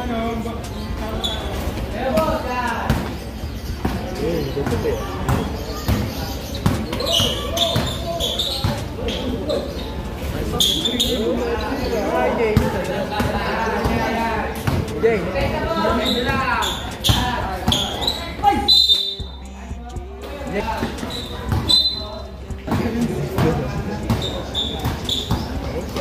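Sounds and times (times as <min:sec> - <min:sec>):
spectators chattering and shouting: 0:00.0 - 0:26.0
shoe squeaks: 0:00.2 - 0:26.0
basketball dribbling on concrete: 0:02.2 - 0:09.0, 0:12.4 - 0:18.2, 0:20.7 - 0:22.0, 0:22.6 - 0:25.7.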